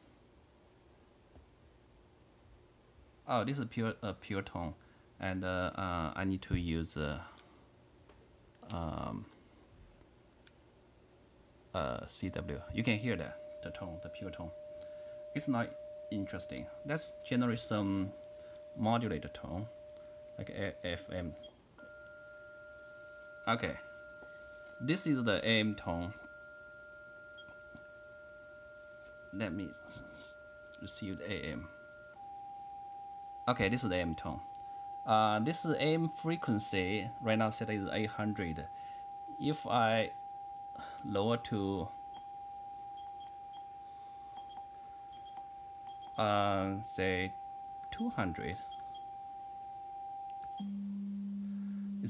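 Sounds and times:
two steady pure tones: 11.8 - 52.0.

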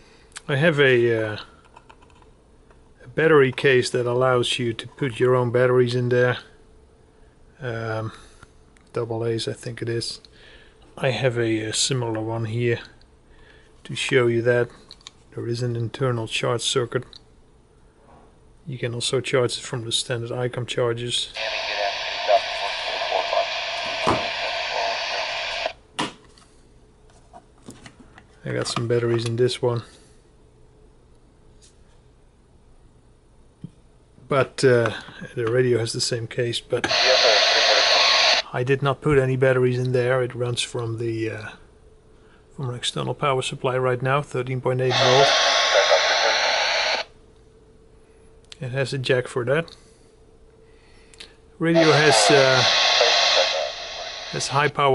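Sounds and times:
radio static hiss: 21.1 - 25.8, 36.8 - 38.5, 44.7 - 47.1, 51.6 - 54.9.

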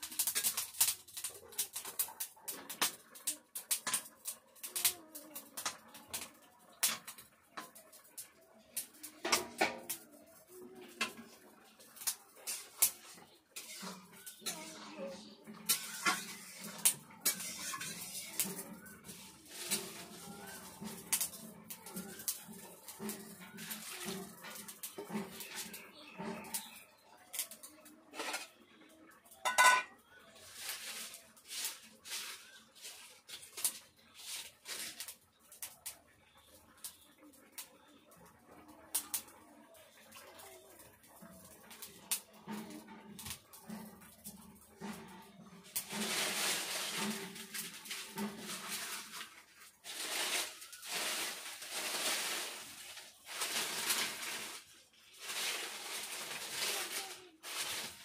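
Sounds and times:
metal spatula scraping iron pan: 12.0 - 26.8, 28.1 - 28.6, 29.4 - 30.0, 41.7 - 51.6.

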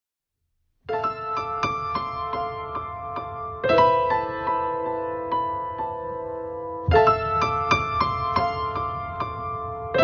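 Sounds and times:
improvised piano music: 0.9 - 10.0.

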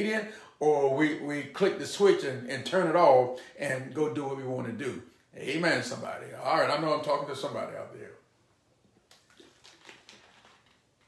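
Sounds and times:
man gulping water from bottle: 9.0 - 11.0.

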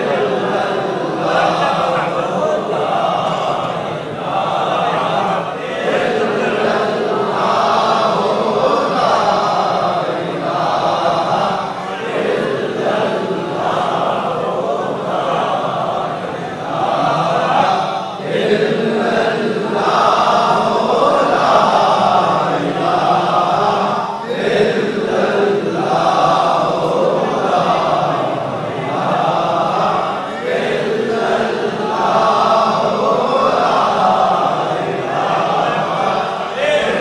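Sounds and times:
crowd of men chanting: 0.0 - 37.0.

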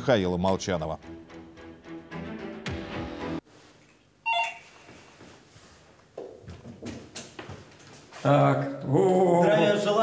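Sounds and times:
electronic doorbell tone: 4.2 - 4.7.

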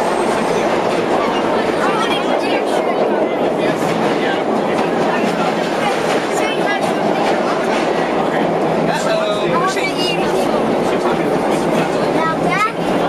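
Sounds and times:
subway train rumbling in tunnel: 0.0 - 13.0.

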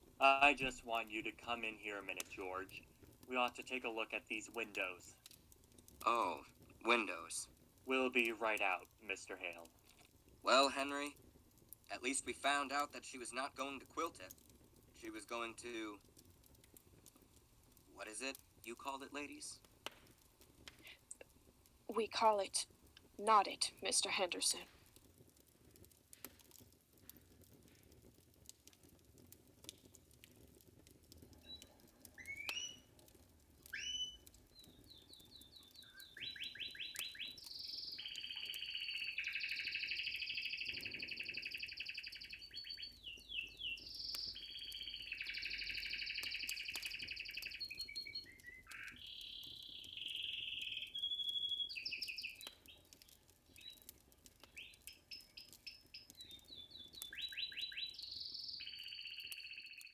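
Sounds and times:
canary singing: 32.2 - 32.9, 33.7 - 52.9, 53.6 - 59.9.

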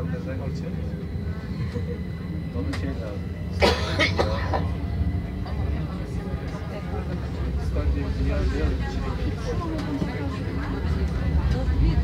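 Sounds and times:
tram rumbling: 0.0 - 12.0
man coughing: 3.5 - 4.8.

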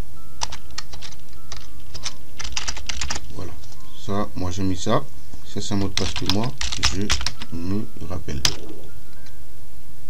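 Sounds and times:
computer keyboard typing: 0.4 - 3.9, 5.7 - 9.3.

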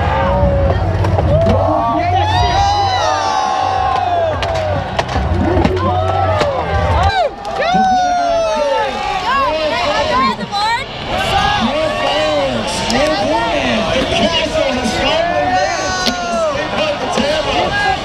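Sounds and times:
crowd shouting and whooping: 0.0 - 18.0.

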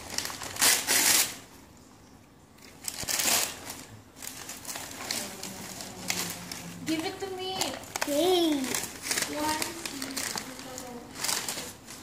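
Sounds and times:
wrapping paper ripping and crinkling: 0.0 - 1.5, 2.6 - 12.0.

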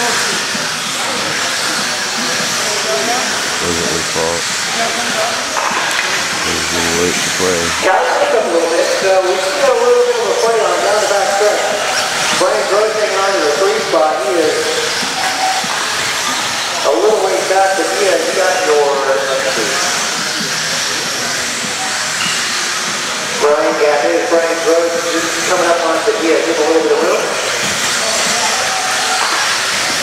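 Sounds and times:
announcer over loudspeaker: 3.6 - 4.5, 6.4 - 8.4.

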